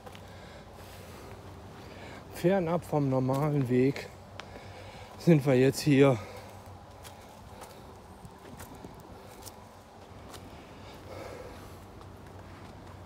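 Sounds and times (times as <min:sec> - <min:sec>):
footsteps on dirt trail: 0:00.0 - 0:13.0.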